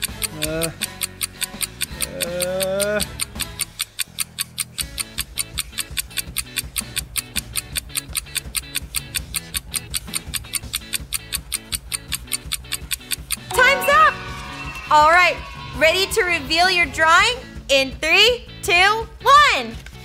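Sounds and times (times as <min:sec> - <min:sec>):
bass line: 0:00.0 - 0:03.6, 0:13.4 - 0:18.2
clock-like ticking: 0:00.0 - 0:14.1
low musical bed: 0:09.0 - 0:20.0.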